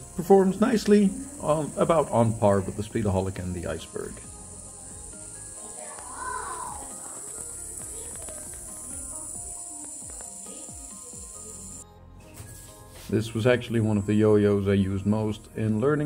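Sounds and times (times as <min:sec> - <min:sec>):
yo-yo bearing spinning hiss: 0:00.0 - 0:11.8.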